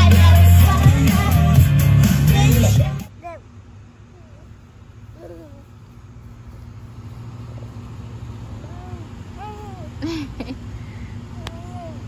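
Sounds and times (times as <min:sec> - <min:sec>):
low outdoor rumble: 0:00.0 - 0:12.0
toddler vocal sounds: 0:03.1 - 0:05.8, 0:08.5 - 0:10.0, 0:11.3 - 0:12.0.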